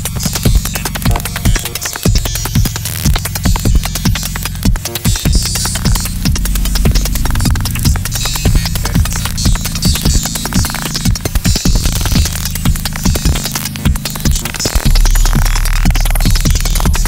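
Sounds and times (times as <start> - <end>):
fast irregular clicks: 0.0 - 17.0
low bass drone: 0.0 - 17.0.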